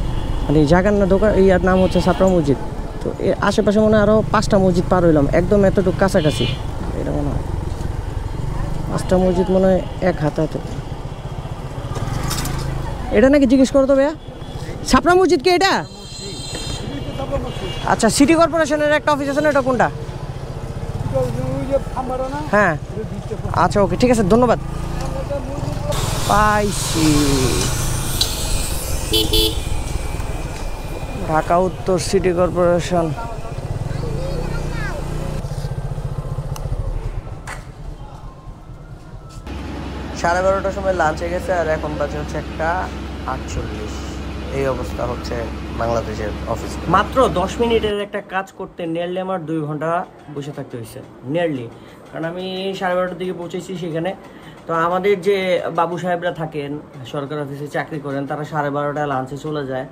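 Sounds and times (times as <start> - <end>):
passing voices: 0.6 - 47.9
motorcycle engine running: 3.7 - 13.3, 18.5 - 47.8
motorcycle engine at low revs: 33.6 - 38.0.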